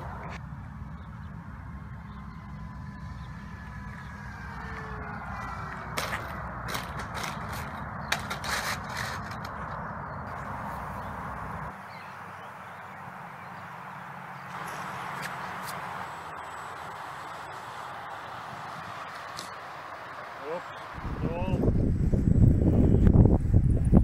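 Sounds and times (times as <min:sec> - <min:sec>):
low wind rumble: 0:00.0 - 0:15.1, 0:16.0 - 0:24.0
model plane motor whine: 0:02.2 - 0:06.6
plane clattering on asphalt: 0:05.7 - 0:10.5.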